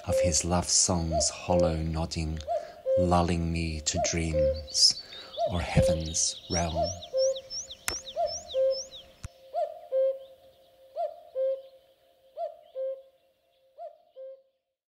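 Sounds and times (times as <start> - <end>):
cuckoo calling: 0.0 - 14.6
small bird chirping: 1.0 - 14.4
sharp click: 7.8 - 8.1.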